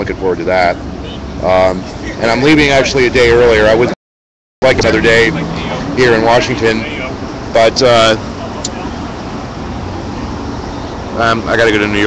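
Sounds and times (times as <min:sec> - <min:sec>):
street traffic: 0:00.0 - 0:04.0, 0:04.6 - 0:12.0.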